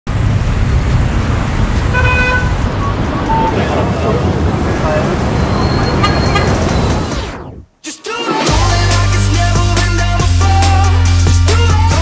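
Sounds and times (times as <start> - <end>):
traffic rumble: 0.0 - 7.7
car horn: 1.8 - 3.6, 5.5 - 6.9.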